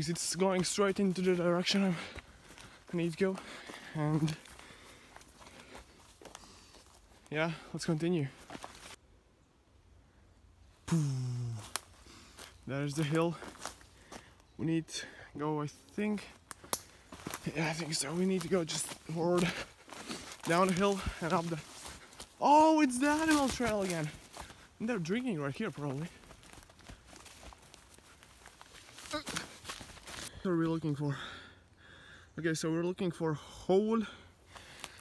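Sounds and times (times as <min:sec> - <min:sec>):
footsteps on leaf litter: 0:00.0 - 0:09.0, 0:11.6 - 0:14.3, 0:15.8 - 0:30.3, 0:34.5 - 0:35.0
man's wordless vocal sound: 0:10.9 - 0:11.8, 0:22.4 - 0:24.2
rustling: 0:25.8 - 0:30.3.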